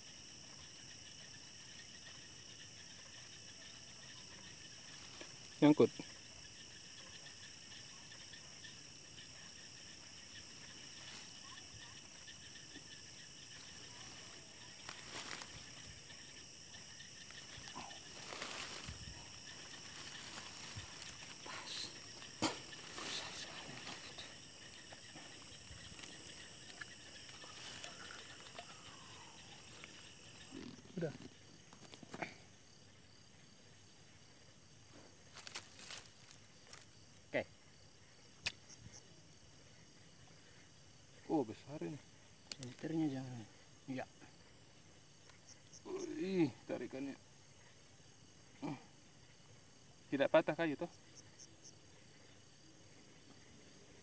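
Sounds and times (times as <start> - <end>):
crickets trilling: 0.0 - 54.0
rustling leaves and grass: 1.8 - 5.9, 9.1 - 32.8, 34.7 - 37.2.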